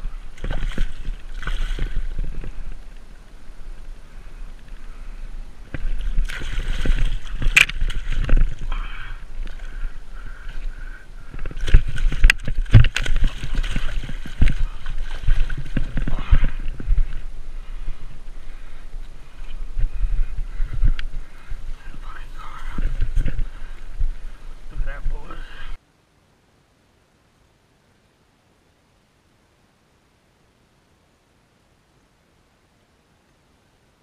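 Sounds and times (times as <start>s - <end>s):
wind and handling rumble: 0.0s - 25.8s
fish thrashing and splashing in water: 0.4s - 2.7s, 5.8s - 8.8s, 11.2s - 17.1s.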